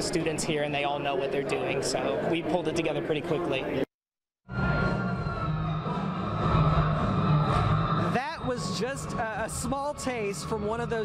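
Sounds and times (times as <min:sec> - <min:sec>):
man's voice: 0:08.1 - 0:11.0.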